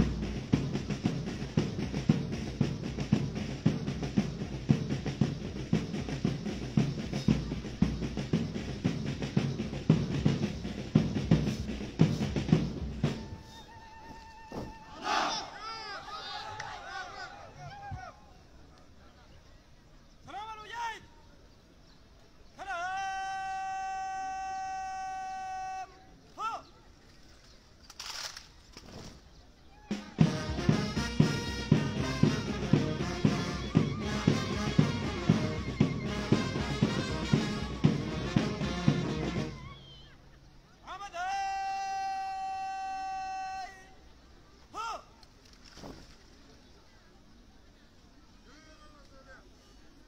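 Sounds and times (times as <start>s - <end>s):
man shouting drill command: 40.9s - 43.9s.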